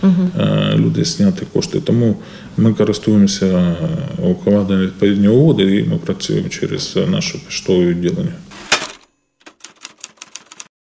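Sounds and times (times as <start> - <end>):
typewriter key clicks: 8.8 - 10.7.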